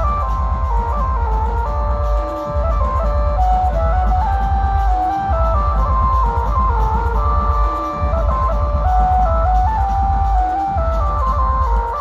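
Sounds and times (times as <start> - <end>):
heavy pulsing bass: 0.0 - 12.0
procession music over loudspeakers: 0.0 - 12.0.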